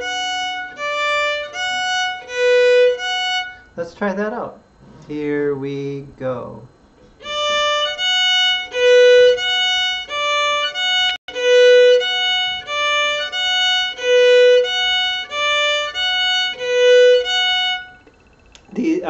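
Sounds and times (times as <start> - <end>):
fiddle played in slow bow strokes: 0.0 - 3.8, 7.2 - 18.2.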